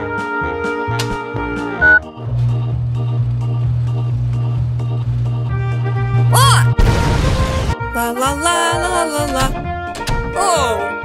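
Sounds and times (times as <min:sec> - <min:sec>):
cartoon background music: 0:06.2 - 0:11.0.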